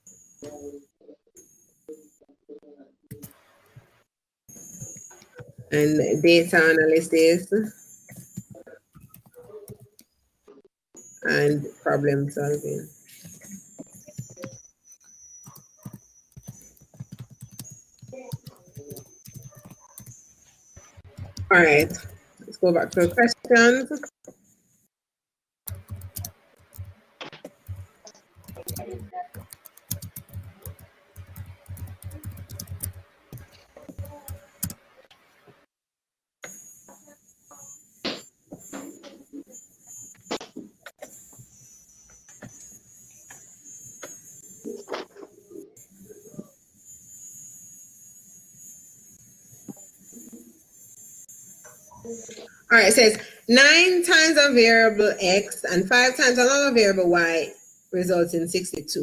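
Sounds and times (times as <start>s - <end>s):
high-pitched electrical whine: 4.5s - 9.7s, 10.5s - 24.2s, 25.7s - 35.5s, 36.4s - 59.0s
steady high-pitched hiss: 4.5s - 9.9s, 11.0s - 24.0s, 36.4s - 59.0s
computer mouse clicking: 15.4s - 20.2s, 20.8s - 22.2s, 25.7s - 34.8s.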